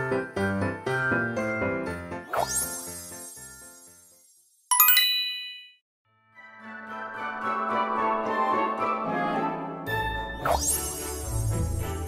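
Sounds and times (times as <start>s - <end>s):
bright bell-like chime: 4.7s - 5.8s.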